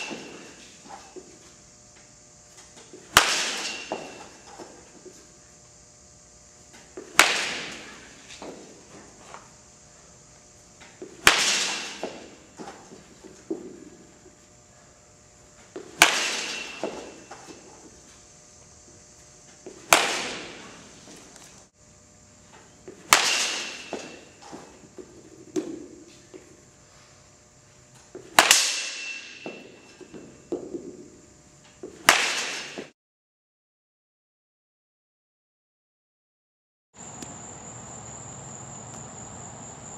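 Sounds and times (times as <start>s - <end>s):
baseball bat striking ball: 0.0s - 1.3s, 2.8s - 5.1s, 6.8s - 9.0s, 10.8s - 14.1s, 15.7s - 18.0s, 19.6s - 21.2s, 22.9s - 26.1s, 28.2s - 31.2s, 31.8s - 32.9s.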